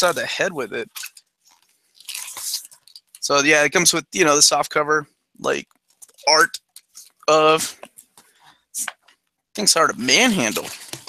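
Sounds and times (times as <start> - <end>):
paper and cardboard rustling: 10.2 - 11.0.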